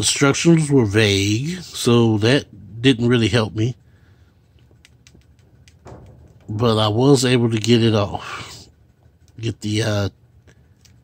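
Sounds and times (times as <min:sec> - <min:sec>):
faint clicks: 0:04.6 - 0:06.4.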